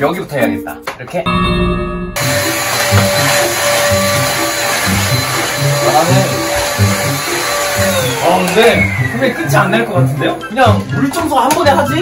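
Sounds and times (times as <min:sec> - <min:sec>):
vacuum cleaner motor whine: 0:02.2 - 0:10.1.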